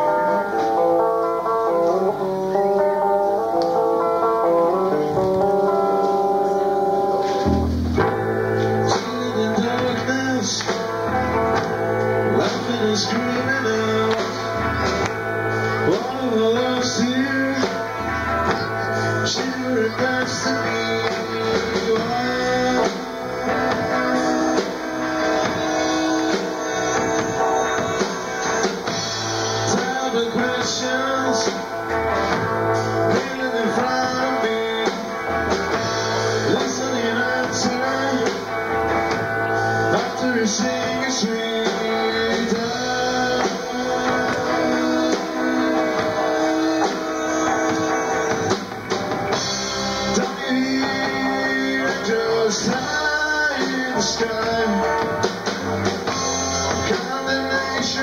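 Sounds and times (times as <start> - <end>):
drum kit: 0.0 - 58.0
live rock band instrumental: 0.0 - 58.0
strummed guitar chords: 0.0 - 58.0.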